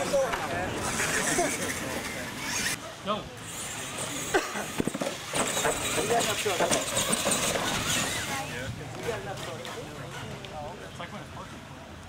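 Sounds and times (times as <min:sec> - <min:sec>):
people talking and laughing: 0:00.0 - 0:11.8.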